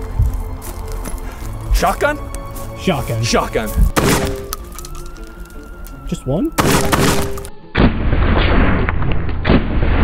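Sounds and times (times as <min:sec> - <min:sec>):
background music: 0:00.0 - 0:08.4
shotgun shot: 0:04.0 - 0:04.6, 0:06.6 - 0:10.0.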